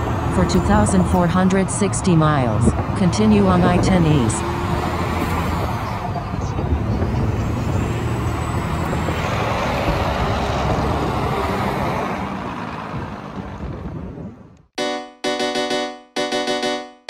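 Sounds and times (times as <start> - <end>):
road and traffic noise: 0.0 - 14.8
truck engine hum: 0.0 - 17.0.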